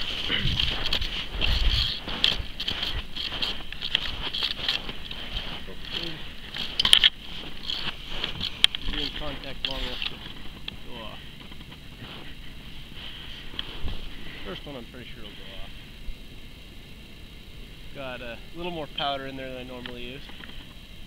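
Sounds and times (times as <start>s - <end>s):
person speaking: 0.0s - 6.8s, 7.4s - 11.3s
footsteps crunching through snow: 0.0s - 11.2s, 11.8s - 14.7s.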